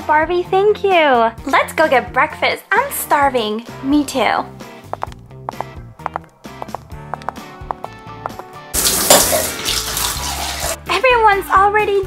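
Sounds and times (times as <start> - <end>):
shower water running: 8.8 - 10.8.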